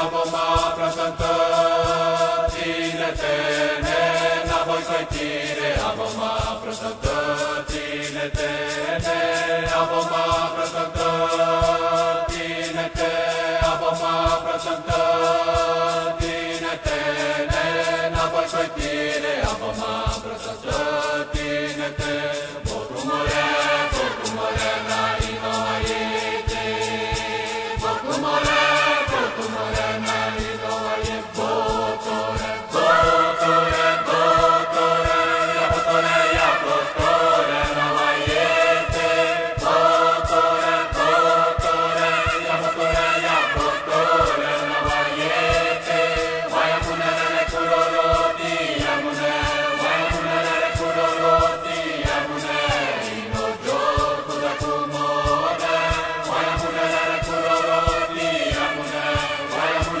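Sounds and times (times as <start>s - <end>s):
choir chanting: 0.0s - 60.0s
fast percussion beat: 0.0s - 60.0s.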